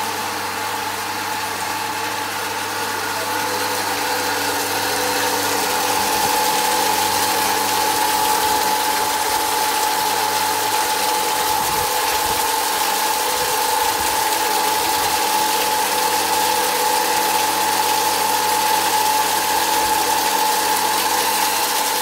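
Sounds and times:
electric water pump humming: 0:00.0 - 0:22.0
water pouring into pond: 0:03.4 - 0:22.0.

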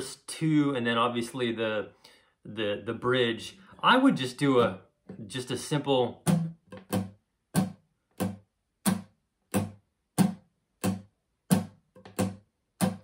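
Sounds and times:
acoustic guitar strummed: 0:06.2 - 0:08.4.

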